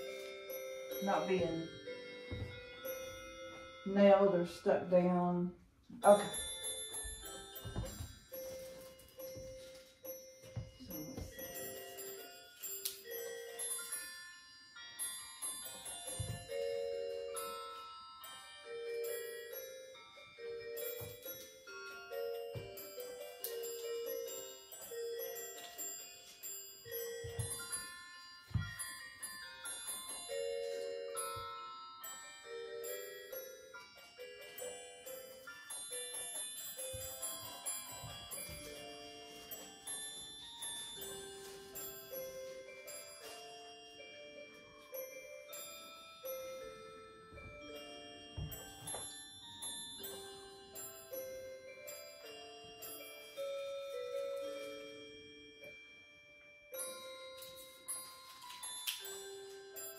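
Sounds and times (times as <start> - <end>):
chiming mallet notes music: 0.0 - 59.9
slow bell-like melody: 0.0 - 59.9.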